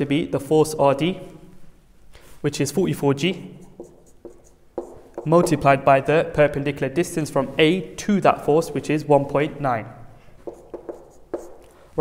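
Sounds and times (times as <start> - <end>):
marker scratching on whiteboard: 3.3 - 5.8, 10.4 - 12.0.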